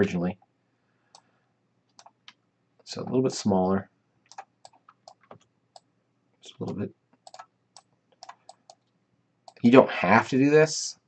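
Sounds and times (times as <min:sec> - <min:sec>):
mouse and keyboard clicks: 0:01.9 - 0:02.4, 0:04.3 - 0:05.9, 0:06.6 - 0:09.6.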